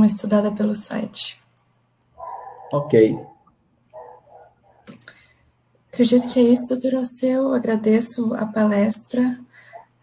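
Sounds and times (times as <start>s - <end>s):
person speaking over video call: 2.6s - 3.3s, 6.0s - 9.4s.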